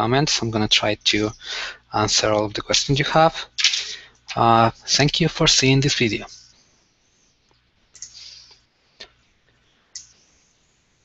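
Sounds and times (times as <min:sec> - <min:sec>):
soft hiss: 0:00.0 - 0:11.0
computer mouse clicking: 0:08.0 - 0:08.2.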